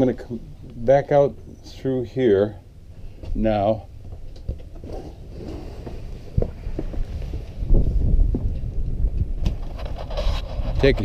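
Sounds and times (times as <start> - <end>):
microphone handling noise: 4.0 - 11.0
wind rumble on microphone: 4.4 - 11.0
footsteps on boat deck: 5.8 - 9.3.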